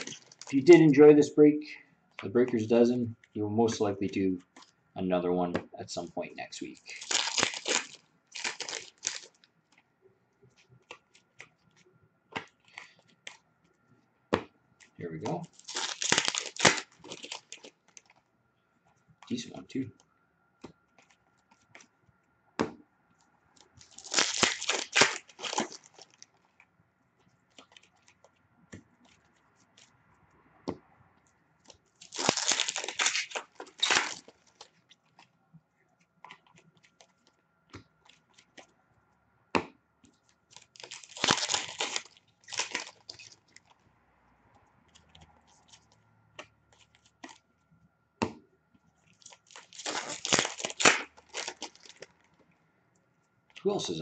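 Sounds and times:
card pack wrappers tearing: 0.0 - 0.8, 6.6 - 9.4, 15.1 - 18.2, 23.6 - 26.6, 32.0 - 35.3, 40.5 - 43.8, 49.1 - 52.2.

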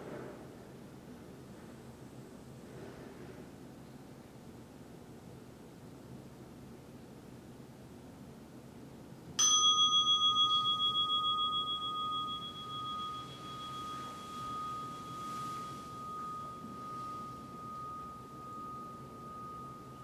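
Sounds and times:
meditation bell ringing: 9.4 - 20.0.

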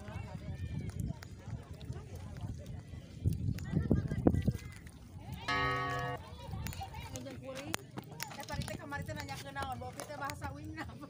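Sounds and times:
steady held tone: 5.5 - 6.2
people talking and calling out: 5.5 - 8.2.

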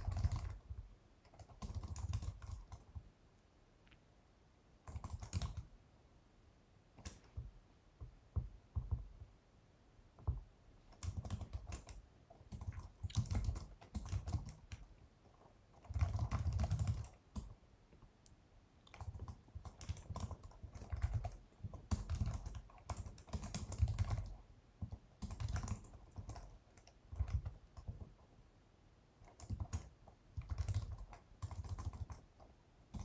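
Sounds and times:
computer keyboard typing: 0.0 - 3.1, 4.8 - 5.7, 7.0 - 9.3, 10.2 - 17.6, 18.8 - 28.4, 29.2 - 33.0.

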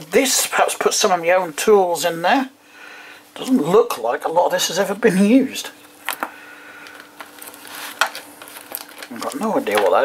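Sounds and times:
faint steady hum: 0.0 - 10.0
fabric rustle: 6.9 - 10.0.

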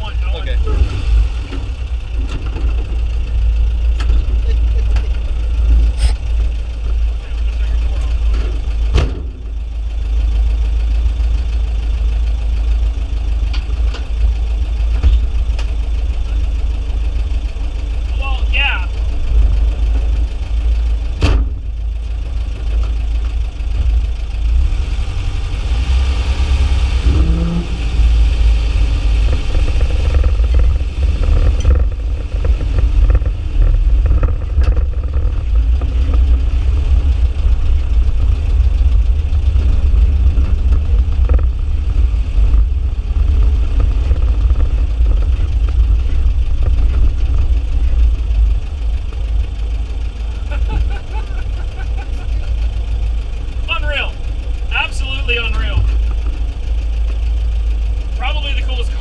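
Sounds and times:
car engine running: 0.0 - 59.0
car door slam: 21.2 - 21.6.

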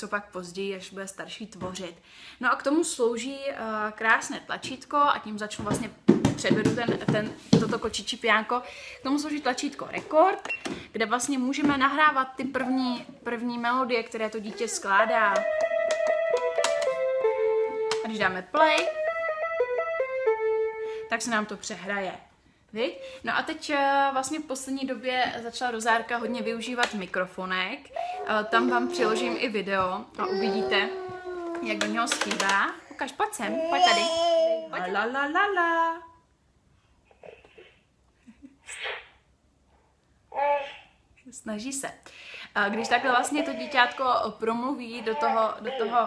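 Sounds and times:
baby breathing and vocalizing: 27.9 - 29.4.

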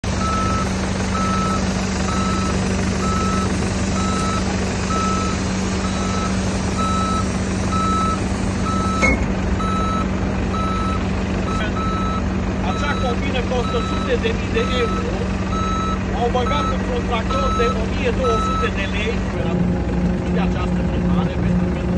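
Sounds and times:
farm vehicle engine running: 0.0 - 21.9
reversing alarm beeps: 0.2 - 18.8.

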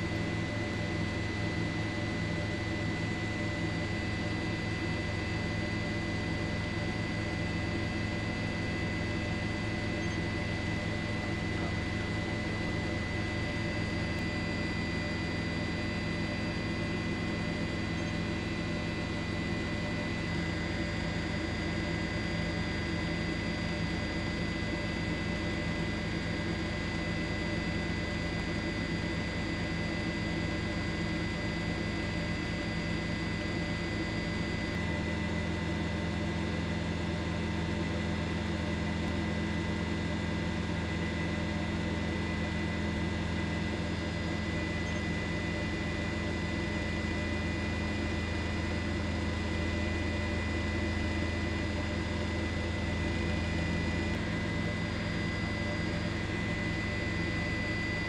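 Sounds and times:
helicopter engine and rotor drone: 0.0 - 58.0.

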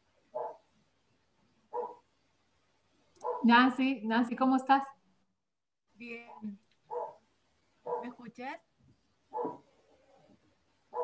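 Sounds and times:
dog barking: 0.3 - 0.7, 1.7 - 2.0, 3.2 - 3.5, 6.9 - 7.2, 7.8 - 8.2, 9.3 - 9.7.

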